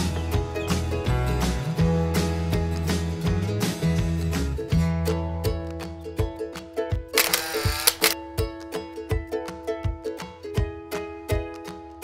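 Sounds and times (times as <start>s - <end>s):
plucked string instrumental music: 0.0s - 12.0s.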